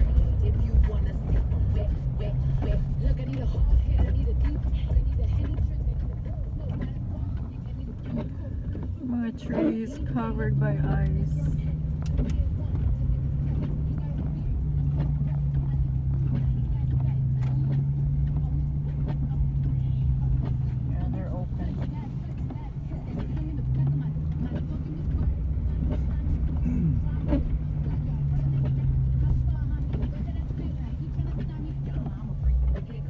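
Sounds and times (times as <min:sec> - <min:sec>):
car engine hum: 0:00.0 - 0:33.0
road noise on wet pavement: 0:00.0 - 0:33.0.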